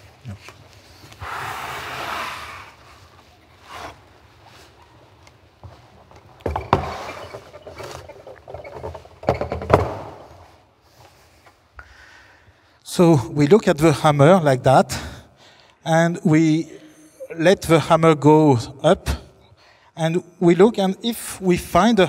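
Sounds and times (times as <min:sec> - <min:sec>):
wooden scraping: 0:05.5 - 0:11.2
sharp wooden knocks: 0:06.4 - 0:10.2
wooden sliding rub: 0:06.5 - 0:09.2.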